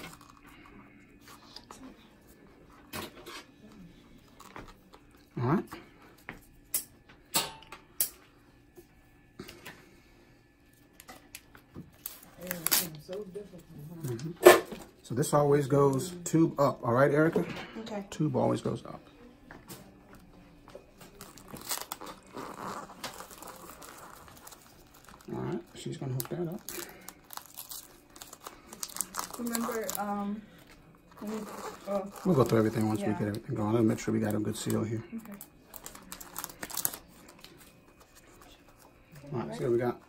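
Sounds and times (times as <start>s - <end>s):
plastic drape crinkling and rustling: 21.1s - 33.0s.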